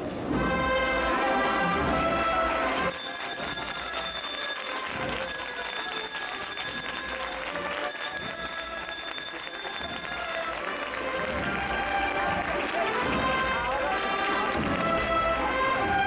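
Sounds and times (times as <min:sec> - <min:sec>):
bell rung in rapid strikes: 0:02.7 - 0:16.0.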